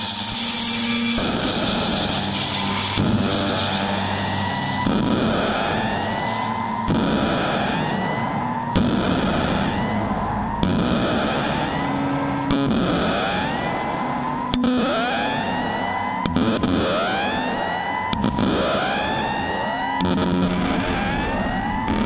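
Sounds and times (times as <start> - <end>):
sharp synth hit: 0.0 - 19.0
dense noisy synth texture: 0.0 - 22.0
rising synth pitch sweep: 0.0 - 22.0.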